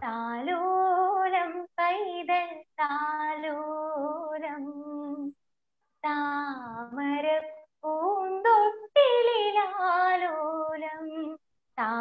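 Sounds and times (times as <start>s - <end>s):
woman singing unaccompanied: 0.0s - 5.4s, 6.0s - 12.0s.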